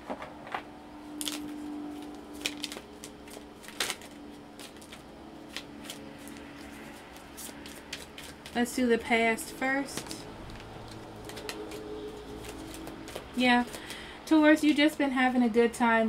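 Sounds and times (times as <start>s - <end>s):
cards being shuffled: 1.2s - 14.9s.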